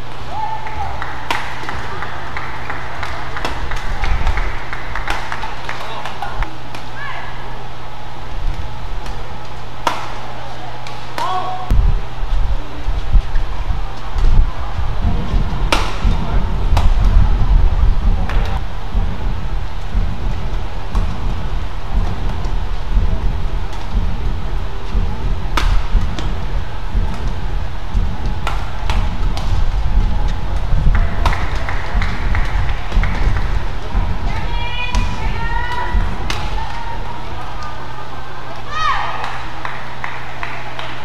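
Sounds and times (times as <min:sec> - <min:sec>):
low rumble of hall noise: 0:00.0 - 0:41.0
racket hitting shuttlecock: 0:01.2 - 0:07.0, 0:09.0 - 0:11.7, 0:15.7 - 0:17.2, 0:24.9 - 0:26.4, 0:28.4 - 0:29.6, 0:30.9 - 0:33.6, 0:36.3 - 0:36.8.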